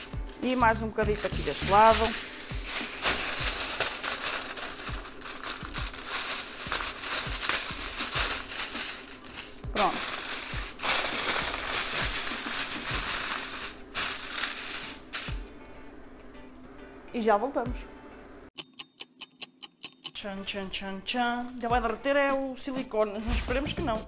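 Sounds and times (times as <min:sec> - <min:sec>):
aluminium foil crinkling: 0:00.0 - 0:16.0, 0:20.7 - 0:22.8
background music: 0:00.0 - 0:18.8, 0:20.2 - 0:24.0.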